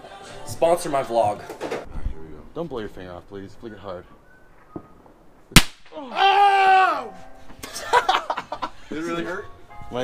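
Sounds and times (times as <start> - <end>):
loud sharp crack: 5.5 - 6.1.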